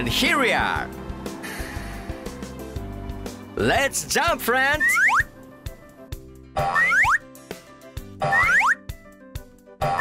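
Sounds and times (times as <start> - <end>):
cartoon music: 4.6 - 5.3, 6.6 - 7.4, 8.2 - 9.0, 9.8 - 10.0.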